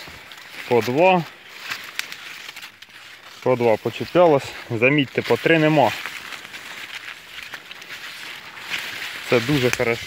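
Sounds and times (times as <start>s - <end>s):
leaves rustling against phone: 0.0s - 10.0s.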